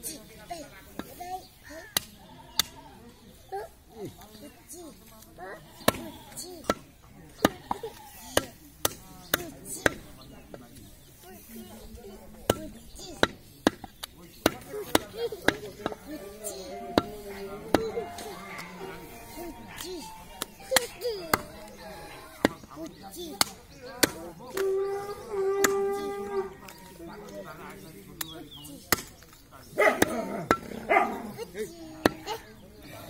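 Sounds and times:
cleaver chopping meat and bone: 5.9 - 10.1, 12.4 - 16.1, 23.3 - 24.7, 28.2 - 29.3, 29.9 - 30.7
cleaver chopping meat on wood: 12.5 - 16.0, 23.4 - 24.7, 28.9 - 29.3
dog barking: 29.8 - 30.2, 30.9 - 31.3.

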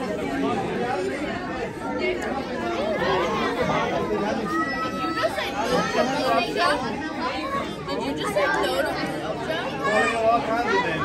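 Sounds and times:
children and adults chattering: 0.0 - 11.0.

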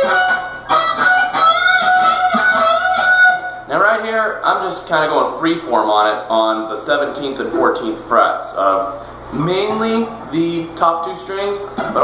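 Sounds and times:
electric guitar lead line: 0.0 - 3.7.

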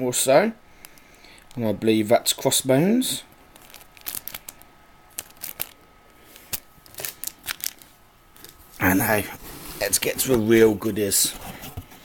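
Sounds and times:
plastic bag crinkling: 3.3 - 8.6.

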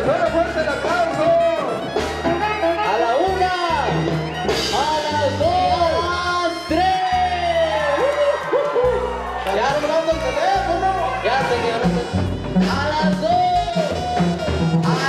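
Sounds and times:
loud dance music: 0.0 - 15.0.

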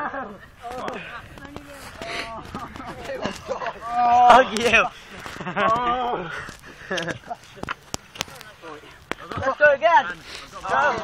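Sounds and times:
laughter: 0.0 - 1.3, 2.2 - 4.0, 5.2 - 6.0, 6.8 - 7.6
young people talking: 0.0 - 11.0.

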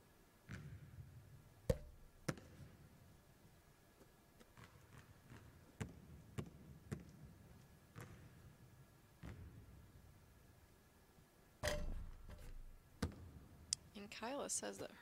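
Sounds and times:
basketball bouncing on hardwood: 1.7 - 2.6, 4.6 - 7.1, 7.9 - 8.3.

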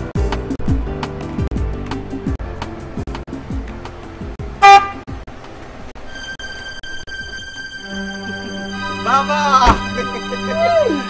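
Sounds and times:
music with deep repeating beat: 0.0 - 5.3
car horn toot: 4.6 - 5.0.

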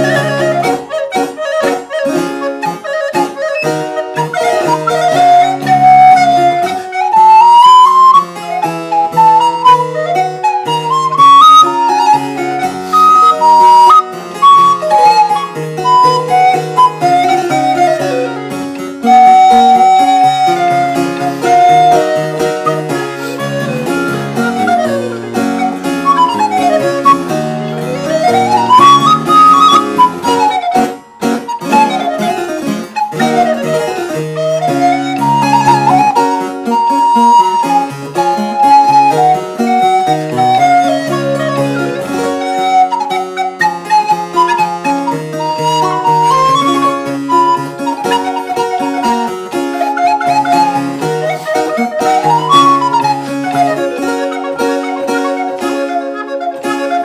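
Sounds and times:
harpsichord chords: 0.0 - 57.0
recorder playing fast melody: 0.0 - 57.0.

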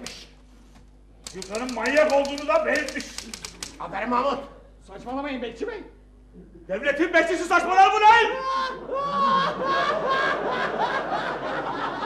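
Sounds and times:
men laughing: 8.4 - 12.0.

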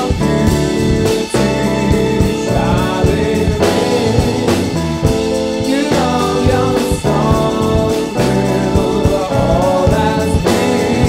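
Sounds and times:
live jazz band playing: 0.0 - 11.0
person singing: 0.0 - 11.0.

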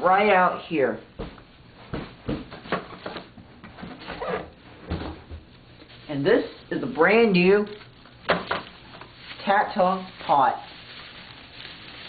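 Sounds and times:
packaging rustling: 5.4 - 12.0.

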